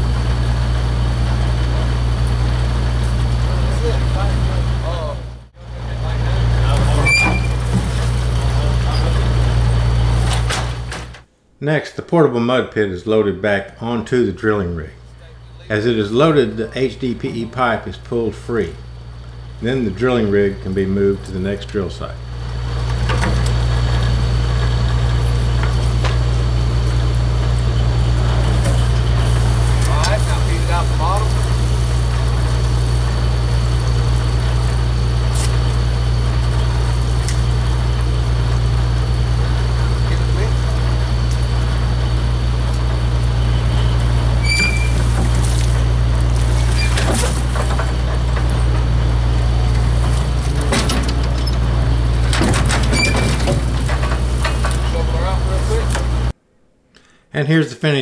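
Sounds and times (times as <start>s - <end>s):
engine droning: 0.0s - 11.3s, 13.8s - 56.4s
metal knocks and clanks: 44.4s - 56.3s.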